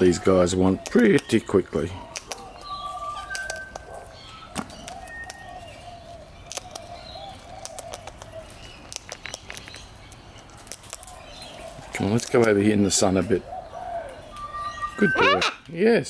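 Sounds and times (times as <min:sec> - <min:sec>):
beak clicking and crunching seeds: 0:02.1 - 0:03.9, 0:04.6 - 0:05.6, 0:06.4 - 0:11.2, 0:12.0 - 0:12.6
faint wavering bird call: 0:13.6 - 0:15.6.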